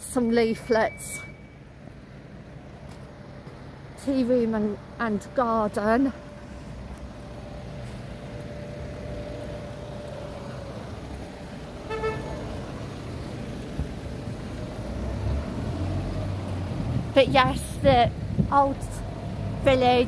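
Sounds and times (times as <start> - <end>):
heavy engine rumble: 0.0 - 20.0
vehicle engines rumbling: 0.0 - 20.0
car horn toot: 11.9 - 12.4.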